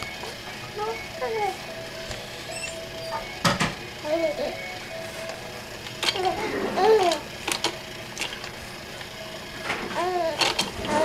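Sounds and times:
plastic toys clicking and rattling: 0:05.8 - 0:11.0
baby cooing: 0:06.2 - 0:07.2, 0:10.0 - 0:11.0.

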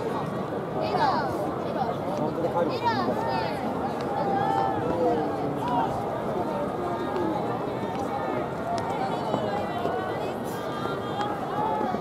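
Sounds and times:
crowd murmur: 0:00.0 - 0:12.0.

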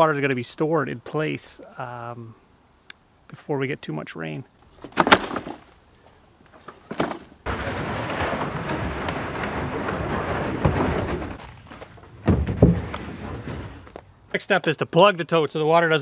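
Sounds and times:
low heavy thuds: 0:07.5 - 0:14.1.

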